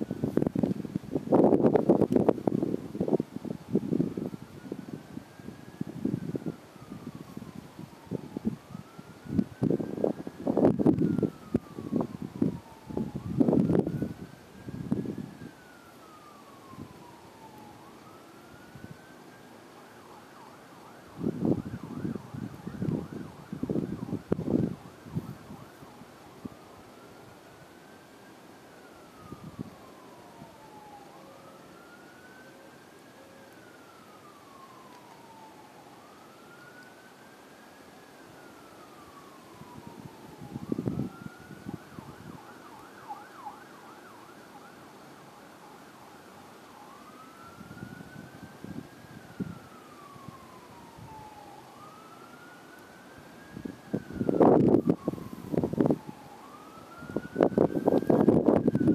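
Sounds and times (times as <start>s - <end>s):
wind buffeting microphone: 0.0s - 19.1s, 21.0s - 26.7s, 28.9s - 31.0s, 38.9s - 43.2s, 47.2s - 52.2s, 53.4s - 58.9s
electronic siren wailing: 0.0s - 58.9s.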